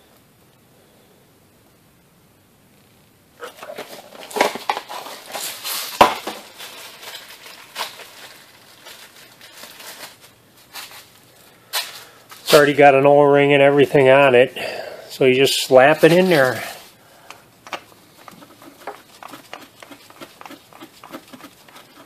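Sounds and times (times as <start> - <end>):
crinkling and rustling packaging: 3.4 - 13.0, 17.6 - 22.0.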